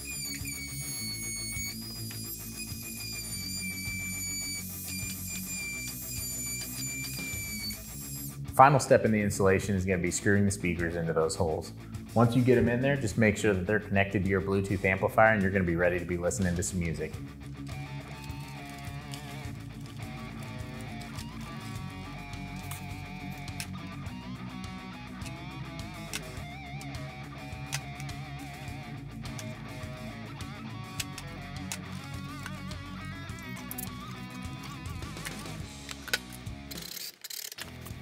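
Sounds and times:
cordless drill driving screws: 0.0 - 8.3
steady bass line: 0.0 - 36.7
guitar melody with bending notes: 0.0 - 36.8
background music: 0.0 - 37.0.

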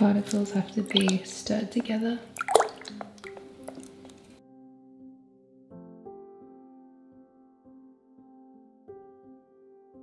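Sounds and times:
stick stirring paint in bucket: 0.0 - 4.3.

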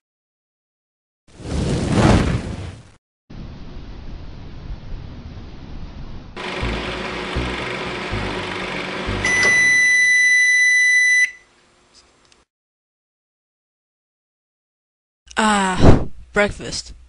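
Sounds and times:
microwave oven humming: 6.4 - 11.6
loud electronic beep: 9.2 - 11.4.

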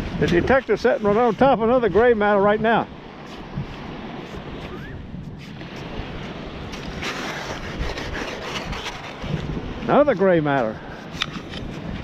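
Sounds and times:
surf: 0.0 - 12.0
wind: 0.0 - 12.0.

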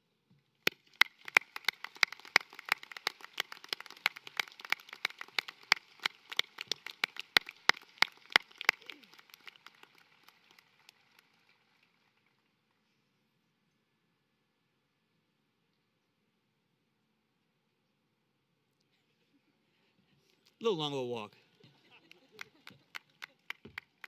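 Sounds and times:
crowd applause: 1.0 - 12.3.

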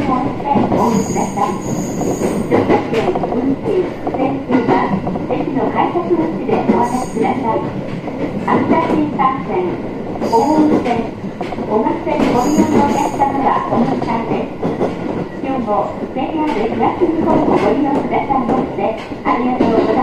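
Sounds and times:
train wheels rolling on rail: 0.0 - 20.0
high-pitched wheel squeals: 0.8 - 2.5, 12.4 - 13.2.

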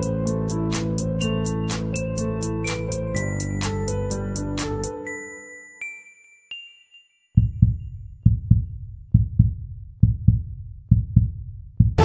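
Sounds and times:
heartbeat thumps: 7.4 - 12.0.

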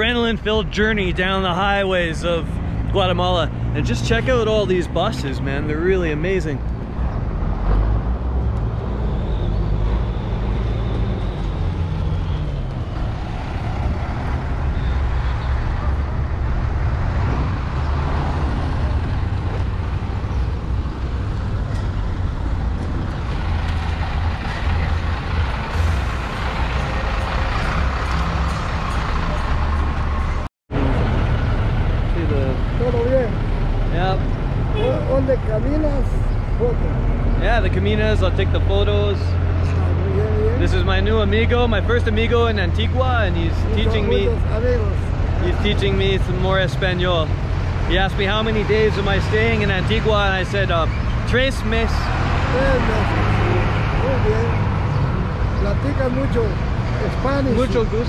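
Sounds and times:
people talking: 0.0 - 6.6, 32.1 - 58.0
bus engines running: 0.0 - 58.0.

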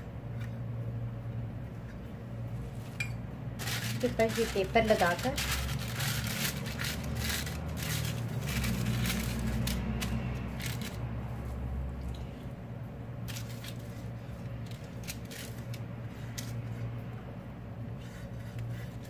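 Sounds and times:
steady low hum: 0.0 - 19.0
baking paper crinkling: 3.5 - 11.6, 13.2 - 17.0.

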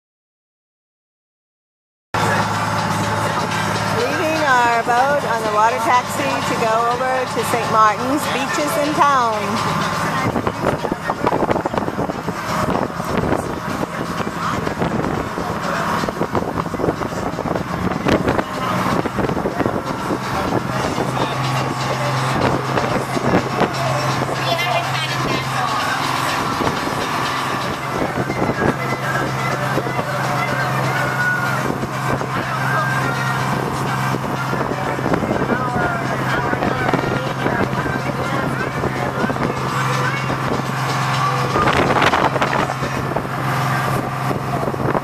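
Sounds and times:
boat motor droning: 2.2 - 45.0.

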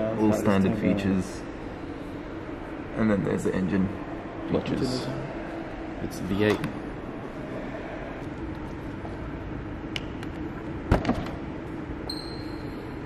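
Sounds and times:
showroom background hum: 0.0 - 13.0.

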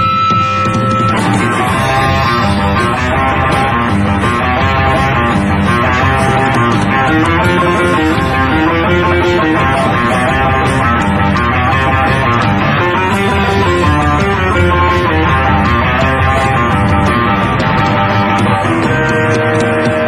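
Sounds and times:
blues-rock band playing loudly: 0.0 - 20.0
electric guitar melody: 0.0 - 20.0.

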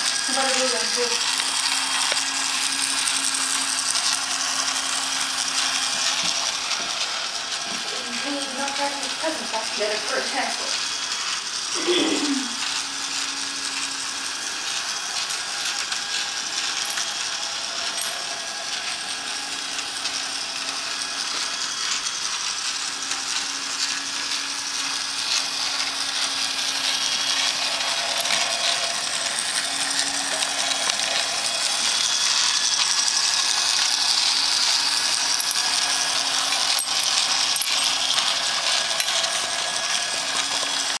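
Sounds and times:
toy train mechanical whirr: 0.0 - 41.0.

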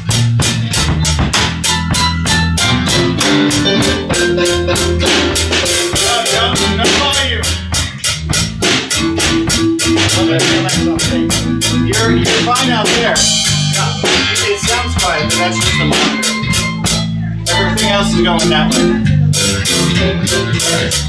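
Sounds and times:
drum kit beat: 0.0 - 21.0
electric bass guitar: 0.0 - 21.0
keyboard: 0.0 - 21.0.

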